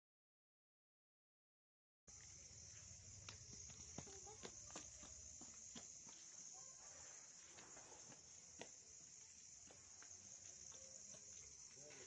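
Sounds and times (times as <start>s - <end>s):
night insects trilling: 2.1s - 12.0s.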